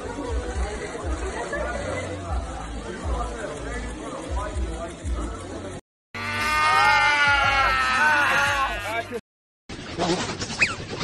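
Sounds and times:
people chattering: 0:00.0 - 0:06.8
voices crying out together: 0:06.2 - 0:09.2.

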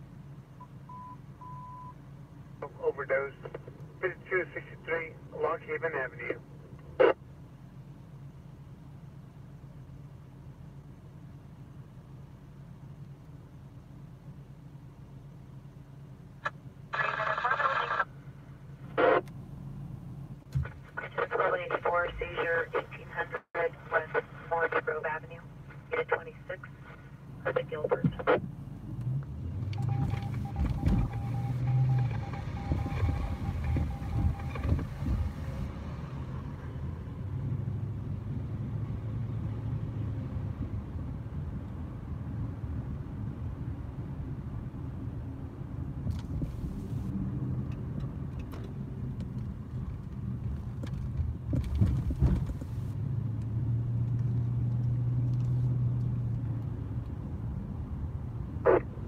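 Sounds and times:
car engine hum: 0:00.0 - 0:59.0
road noise: 0:00.0 - 0:59.0.

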